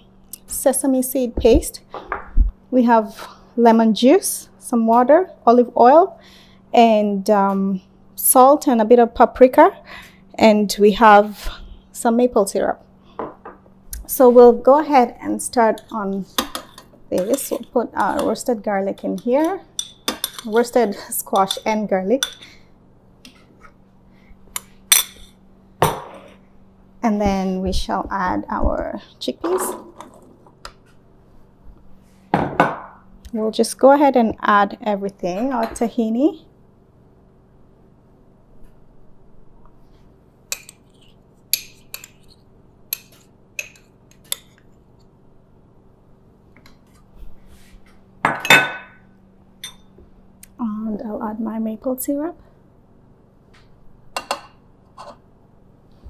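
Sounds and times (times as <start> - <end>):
ceramic bowl clinking on steel bowl: 49.6 - 49.9.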